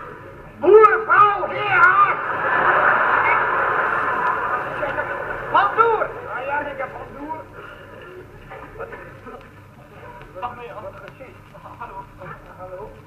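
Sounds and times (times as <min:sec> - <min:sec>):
audience laughing: 0:01.5 - 0:09.2.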